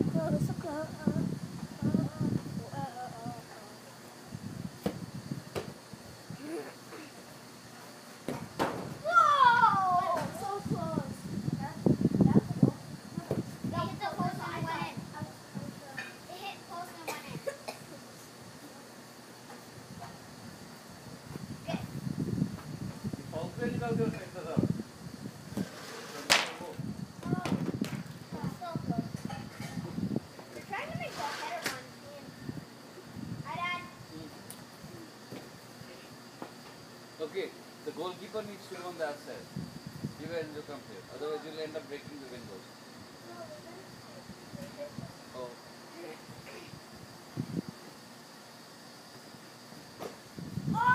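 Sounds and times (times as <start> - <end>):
soccer ball kicked on grass: 4.8 - 5.7.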